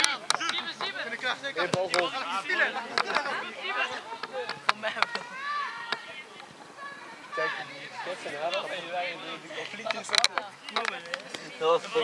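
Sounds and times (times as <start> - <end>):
players shouting: 0.0 - 10.1.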